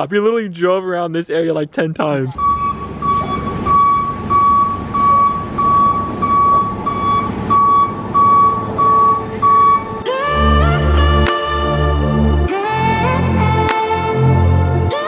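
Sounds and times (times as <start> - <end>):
truck engine: 2.3 - 15.0
reversing alarm beeping: 2.4 - 10.1
music with heavy bass: 7.9 - 15.0.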